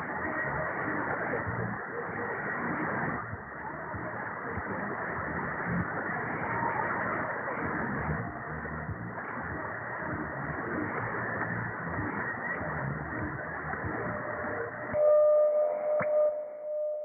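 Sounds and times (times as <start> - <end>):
radio static hiss: 0.0 - 15.0.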